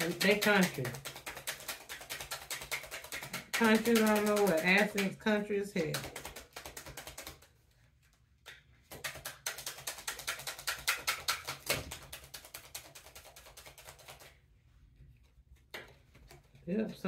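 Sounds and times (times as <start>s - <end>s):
cards being shuffled: 0.0s - 16.6s.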